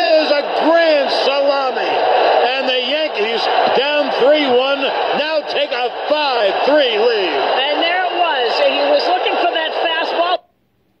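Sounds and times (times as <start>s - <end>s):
man announcing on radio: 0.0s - 10.5s.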